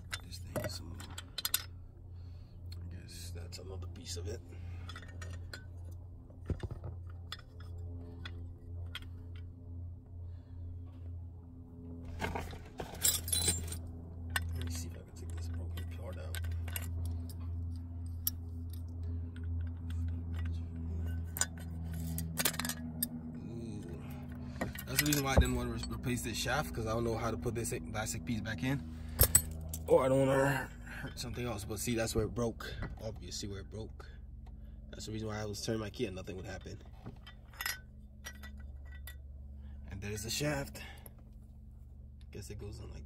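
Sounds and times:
small metal parts clinking: 0:00.0 - 0:01.9, 0:04.6 - 0:09.5, 0:12.1 - 0:23.2, 0:24.5 - 0:26.3, 0:29.0 - 0:30.1, 0:36.5 - 0:41.0
steady low hum: 0:00.0 - 0:43.0.

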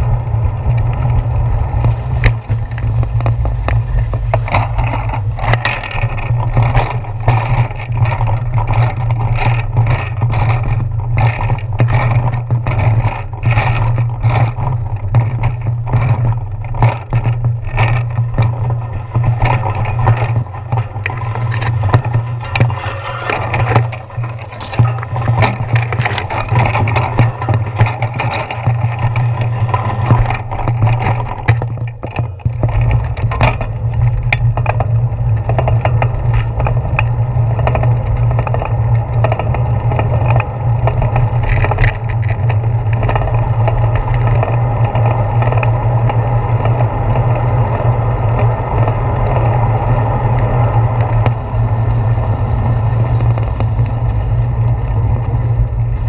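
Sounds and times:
bicycle clicks and knocks: 0:00.0 - 0:56.0
bike rolling on pavement: 0:00.0 - 0:56.0.

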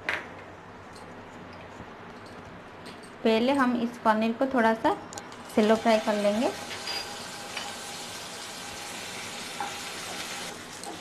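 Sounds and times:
cheese sizzling in oil: 0:05.7 - 0:11.0.

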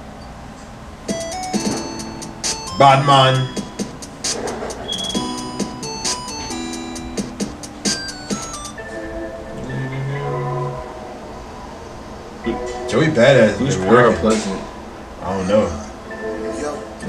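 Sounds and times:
electronic game music: 0:01.1 - 0:11.5
clicky bleeps: 0:04.8 - 0:05.4.

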